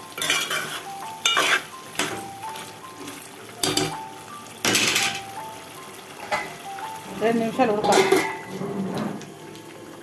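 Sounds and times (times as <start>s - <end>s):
spoon scraping metal pot: 0.2s - 1.7s.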